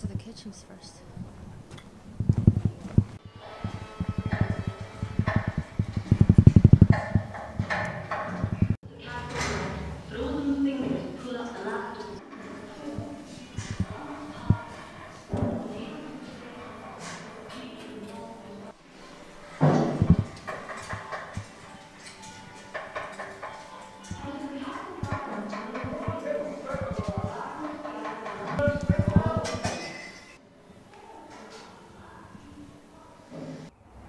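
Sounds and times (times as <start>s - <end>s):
indistinct voices: 0.0s - 33.7s
irregular clattering: 1.7s - 9.8s, 12.3s - 14.7s, 19.6s - 30.4s.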